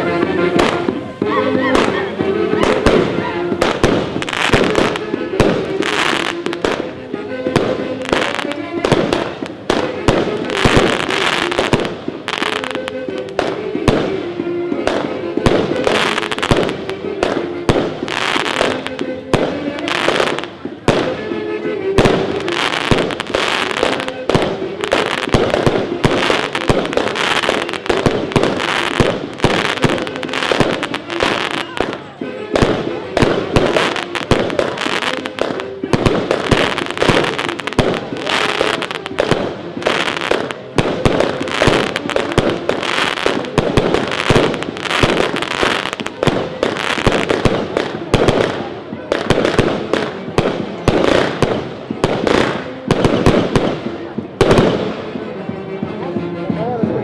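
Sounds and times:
fireworks bangs and crackles: 0:00.0 - 0:57.0
music playing a melody: 0:00.0 - 0:57.0.

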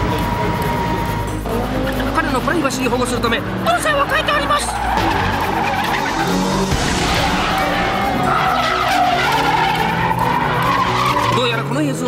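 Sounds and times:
car engine running: 0:00.0 - 0:12.0
car tyres screeching: 0:00.0 - 0:12.0.

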